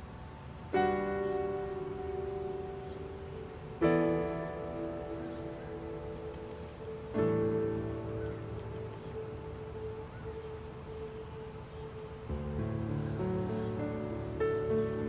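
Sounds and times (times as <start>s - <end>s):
slow piano chords: 0.0s - 15.0s.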